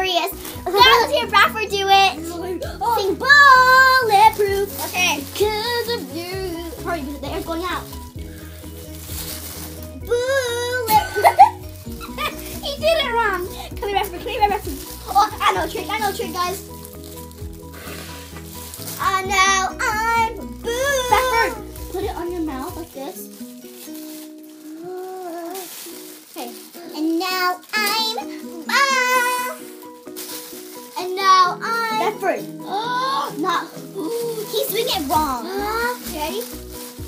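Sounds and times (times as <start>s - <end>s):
background music with bass line: 0.0s - 23.0s
children squealing and laughing: 10.1s - 16.6s, 19.0s - 22.1s, 32.6s - 36.3s.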